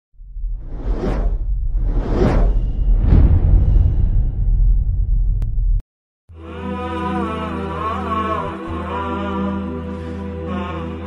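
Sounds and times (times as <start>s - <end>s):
steady deep rumble: 0.2s - 5.8s
whoosh sound effect: 0.6s - 4.8s.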